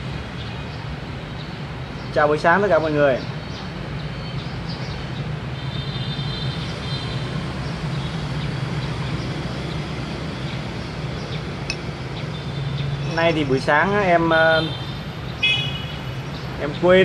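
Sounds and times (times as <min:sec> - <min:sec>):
low hum of traffic engines: 0:00.0 - 0:17.0.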